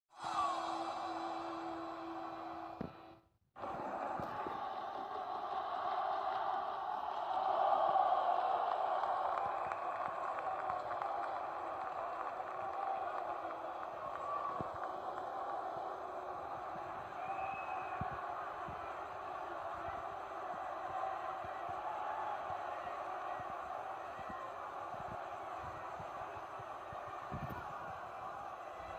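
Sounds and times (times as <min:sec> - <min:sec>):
arena crowd hum: 0:00.1 - 0:28.9.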